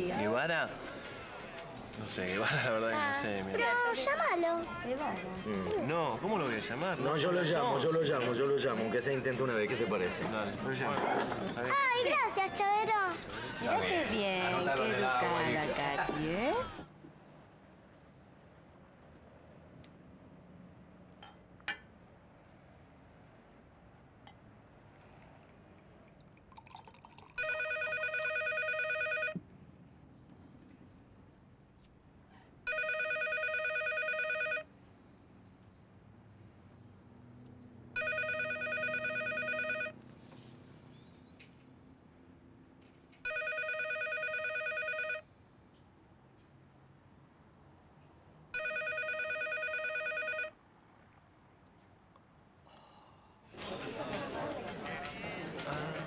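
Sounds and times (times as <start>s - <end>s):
wine pouring into a glass: 25.7s - 27.6s
electronic telephone ringing: 27.4s - 29.4s, 32.7s - 34.6s, 38.0s - 40.0s, 43.2s - 45.2s, 48.6s - 50.5s.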